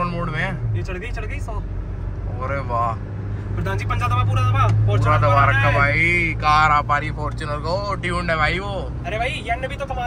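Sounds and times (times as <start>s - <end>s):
car engine drone: 0.0s - 10.0s
road noise: 0.0s - 10.0s
man shouting excitedly: 3.9s - 6.0s.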